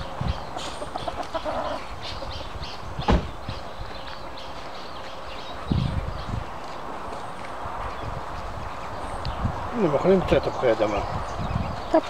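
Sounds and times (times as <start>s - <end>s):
fowl clucking: 0.6s - 1.9s
soft high peeps of fowl: 0.6s - 2.6s
sharp thump: 3.0s - 3.4s.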